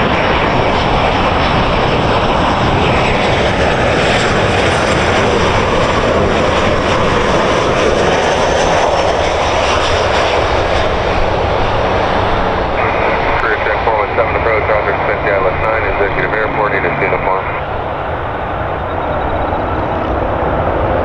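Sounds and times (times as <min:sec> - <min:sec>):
jet airliner engines passing: 0:00.0 - 0:21.0.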